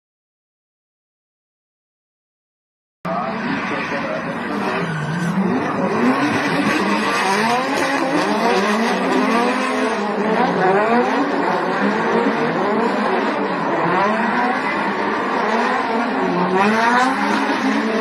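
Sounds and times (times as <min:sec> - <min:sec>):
car engines revving: 0:03.1 - 0:18.0
tyres squealing and skidding: 0:03.1 - 0:18.0.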